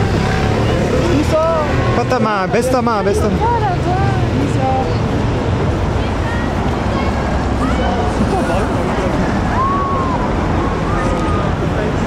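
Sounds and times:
crowd of fans shouting: 0:07.0 - 0:11.8.

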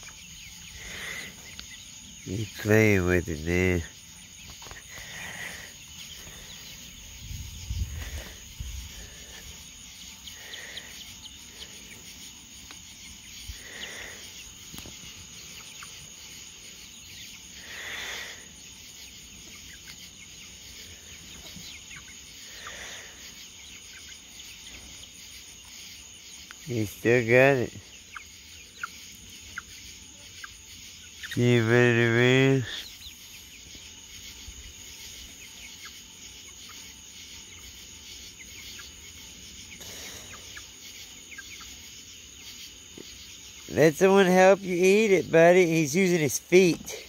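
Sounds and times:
crickets trilling: 0:00.0 - 0:47.0
poultry calls: 0:00.0 - 0:47.0.

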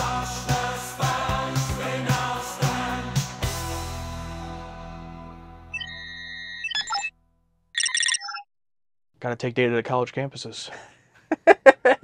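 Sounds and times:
music: 0:00.0 - 0:05.9
electronic computer beeps: 0:05.7 - 0:07.1, 0:07.8 - 0:08.5.

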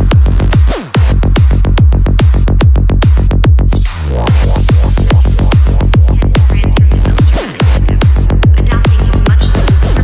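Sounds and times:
electronic kick-drum beat: 0:00.0 - 0:10.0
rolling bassline: 0:00.0 - 0:10.0.

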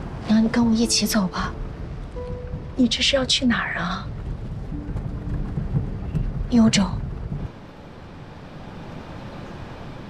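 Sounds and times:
steady background hiss: 0:00.0 - 0:10.0
deep low rumble: 0:00.1 - 0:07.7.

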